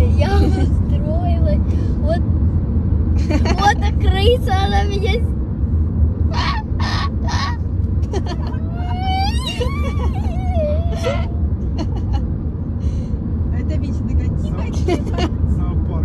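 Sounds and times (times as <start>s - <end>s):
car cabin road rumble: 0.0s - 16.0s
girl whining: 8.4s - 11.5s.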